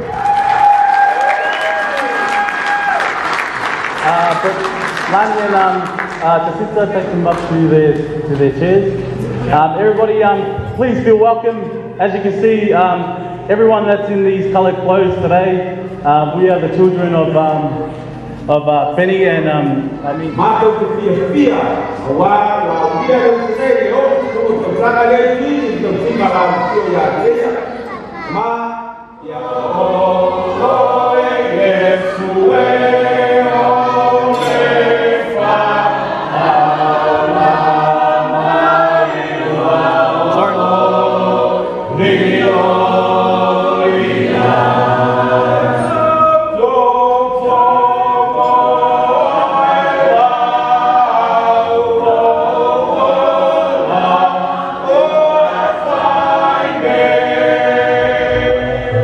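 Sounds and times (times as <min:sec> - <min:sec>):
choir singing chords: 0:01.9 - 0:59.0.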